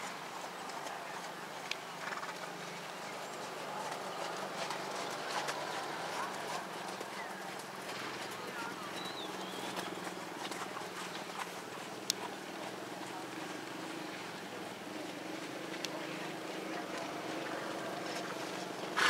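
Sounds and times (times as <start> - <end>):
horse hooves trotting on sand: 0.0 - 19.0
outdoor background noise: 0.0 - 19.0.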